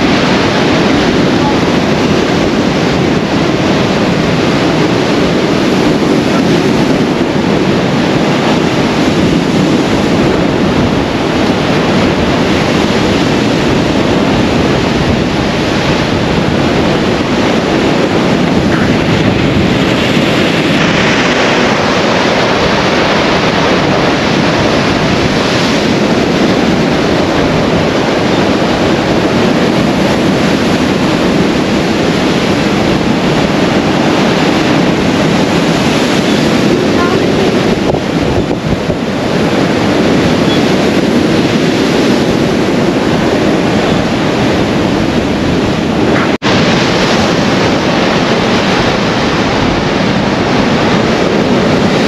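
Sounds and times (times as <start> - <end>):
surf washing against seawall: 0.0 - 52.0
wind buffeting microphone: 0.0 - 52.0.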